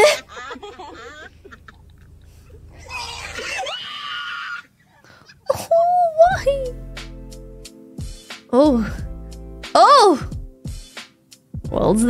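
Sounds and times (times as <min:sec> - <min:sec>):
person screaming shrilly: 0:02.8 - 0:04.7.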